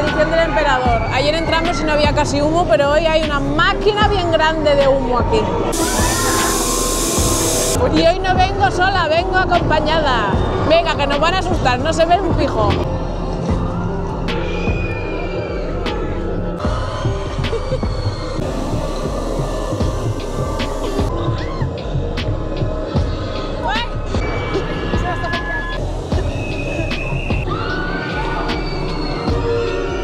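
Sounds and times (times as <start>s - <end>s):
fog machine hissing: 5.7s - 7.8s, 18.4s - 21.1s
horror soundtrack music: 12.8s - 30.0s
low rumbling: 15.6s - 27.6s.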